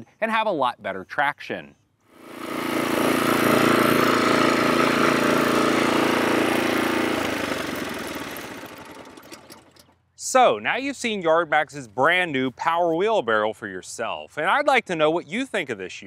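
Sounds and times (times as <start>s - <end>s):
small gas engine running: 2.1s - 10.0s.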